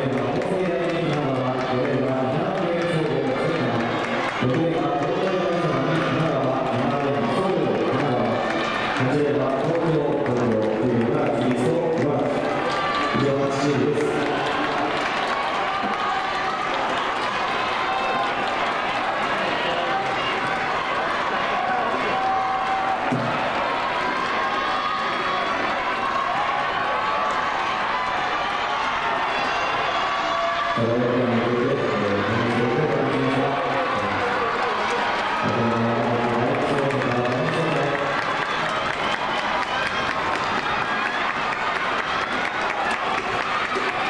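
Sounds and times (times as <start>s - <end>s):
crowd cheering and shouting: 0.0s - 44.0s.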